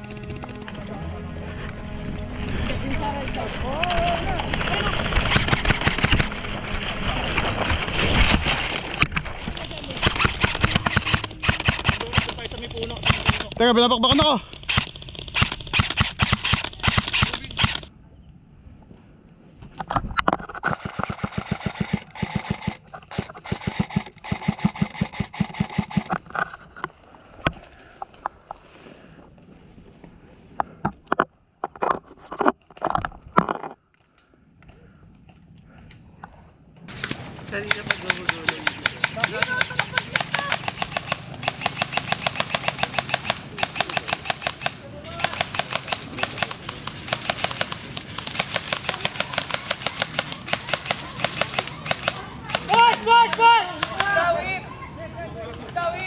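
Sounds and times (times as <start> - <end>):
airsoft rifles firing in bursts: 4.0 - 17.9, 20.8 - 26.2, 36.9 - 54.4.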